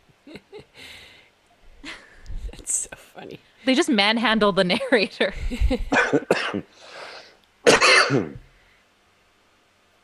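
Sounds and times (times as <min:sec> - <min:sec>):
breathy exhale: 0:00.8 - 0:01.3, 0:06.7 - 0:07.4
man coughing: 0:05.9 - 0:06.7, 0:07.7 - 0:08.4.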